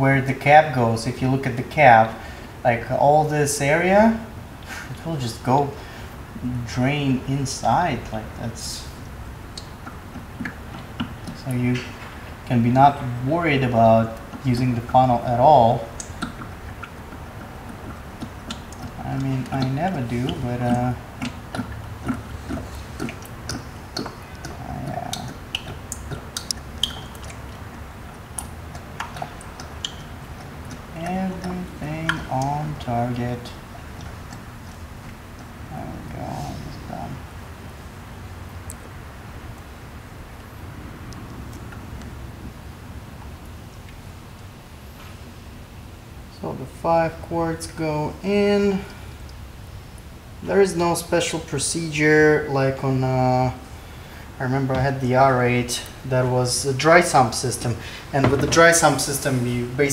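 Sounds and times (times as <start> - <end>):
oil pouring with faint gurgling: 3.3 - 44.6.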